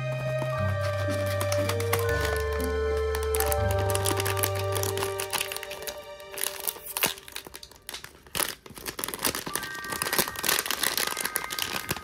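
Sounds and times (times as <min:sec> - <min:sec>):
background music: 0:00.0 - 0:08.0
plastic packaging crinkling: 0:00.0 - 0:12.0.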